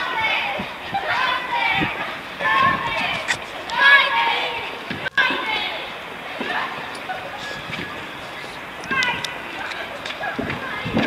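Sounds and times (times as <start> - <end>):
high-pitched voices calling out: 0.0 - 11.0.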